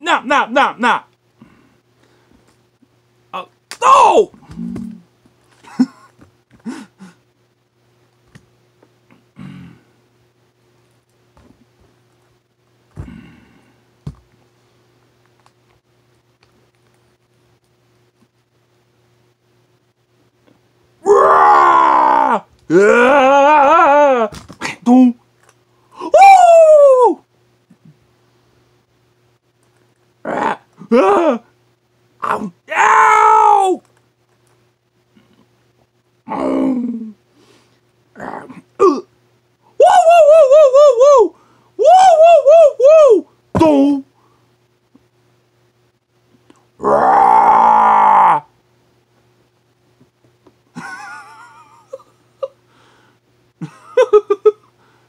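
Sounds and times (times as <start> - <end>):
man groaning: 3.4 - 5.0, 21.0 - 25.2, 30.2 - 31.5, 32.2 - 33.8, 36.3 - 37.2, 38.2 - 39.1, 39.8 - 44.1, 46.8 - 48.5
person's pained vocal cry: 21.0 - 25.1, 30.3 - 31.5, 32.2 - 33.8, 39.8 - 44.0.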